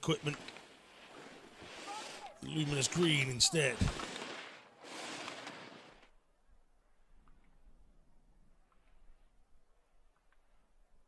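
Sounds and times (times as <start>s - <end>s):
skis scraping on snow: 0.0s - 6.1s.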